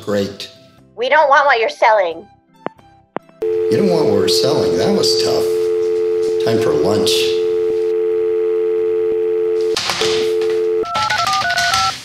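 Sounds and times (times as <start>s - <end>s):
telephone dial tone: 3.4s - 11.9s.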